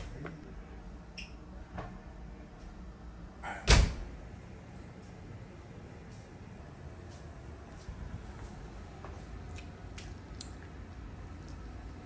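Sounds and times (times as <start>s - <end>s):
door shutting thud: 3.4s - 4.1s.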